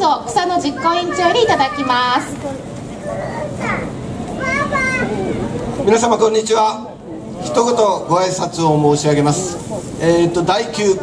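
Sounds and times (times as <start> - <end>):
children calling out: 0.6 - 5.8.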